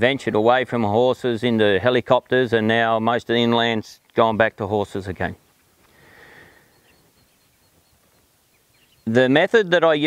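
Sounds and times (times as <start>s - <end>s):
faint bird chirps: 5.5s - 9.5s.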